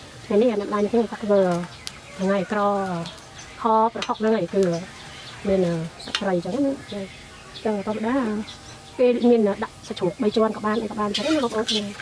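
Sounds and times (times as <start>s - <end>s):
woman speaking: 0.3s - 12.0s.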